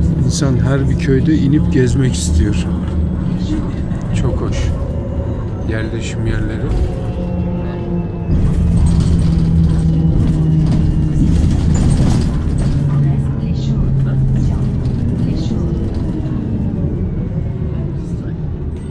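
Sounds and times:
bus engine drone: 0:00.0 - 0:18.9
road noise: 0:00.0 - 0:18.9.

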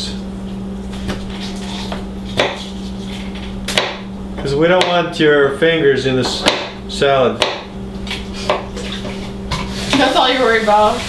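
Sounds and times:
knife chopping on cutting board: 0:01.0 - 0:02.8, 0:03.7 - 0:04.1, 0:04.8 - 0:05.0, 0:06.3 - 0:07.7, 0:08.4 - 0:08.7.

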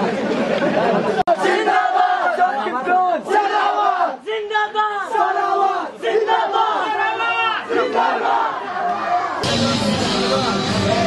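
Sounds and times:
crowd of men shouting slogans: 0:01.3 - 0:09.4
loud music: 0:09.4 - 0:11.0.

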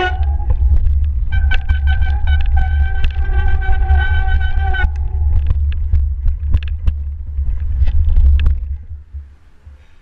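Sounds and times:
wind on microphone: 0:00.0 - 0:09.8
bike rattling clicks and knocks: 0:00.0 - 0:10.0
riding vibration rumble: 0:00.0 - 0:10.0.

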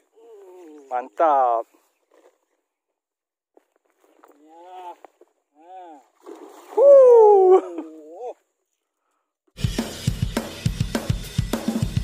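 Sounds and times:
splash on lake surface: 0:06.1 - 0:07.1
man shouting excitedly: 0:06.8 - 0:07.9.

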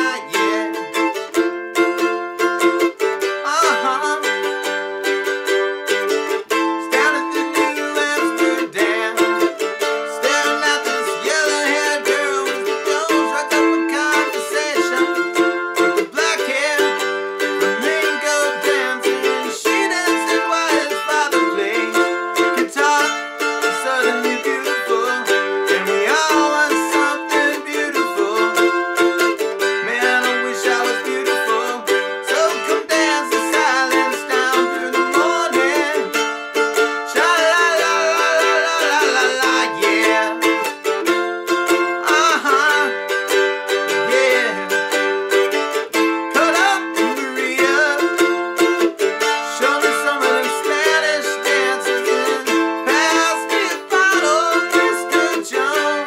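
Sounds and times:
mandolin strumming chords: 0:00.0 - 0:56.0.

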